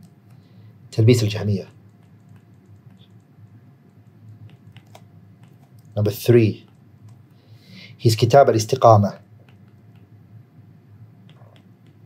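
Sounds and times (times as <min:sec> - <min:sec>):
low steady hum: 0:00.0 - 0:12.0
stylus tapping on tablet screen: 0:01.7 - 0:06.0, 0:09.4 - 0:10.1.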